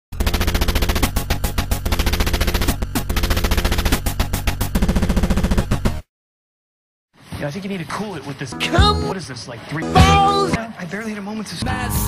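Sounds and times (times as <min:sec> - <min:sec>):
rapid sharp rattling hits: 0:00.1 - 0:06.0.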